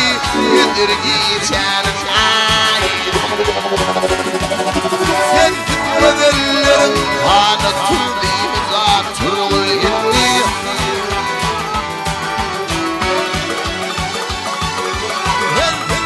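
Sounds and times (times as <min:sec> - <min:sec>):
live band playing: 0:00.0 - 0:16.0
man singing pop: 0:05.2 - 0:11.6.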